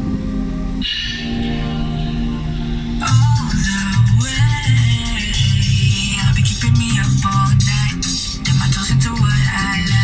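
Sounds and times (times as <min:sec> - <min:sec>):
background song with held chords: 0:00.0 - 0:10.0
pulsing low beat: 0:00.0 - 0:10.0.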